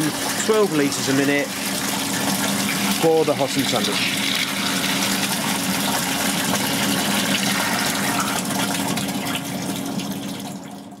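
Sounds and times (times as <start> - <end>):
water gushing through pipe: 0.0 - 11.0.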